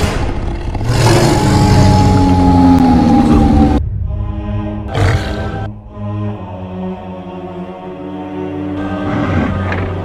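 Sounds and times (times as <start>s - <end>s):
deep rumbling drone: 0.0s - 8.2s.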